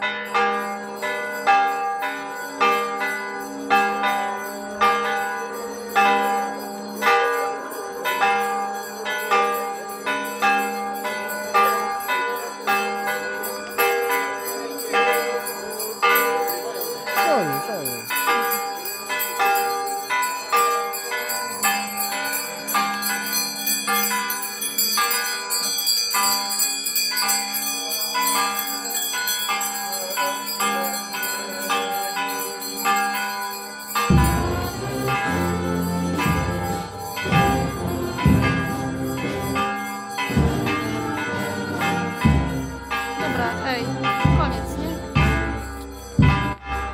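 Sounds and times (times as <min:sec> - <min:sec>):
church bells ringing: 0:00.0 - 0:46.9
brass band playing a hymn: 0:34.1 - 0:46.6.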